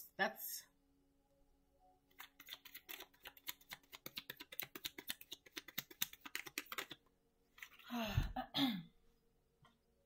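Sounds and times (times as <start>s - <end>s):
cards being shuffled by hand: 2.1s - 7.0s, 7.6s - 7.9s.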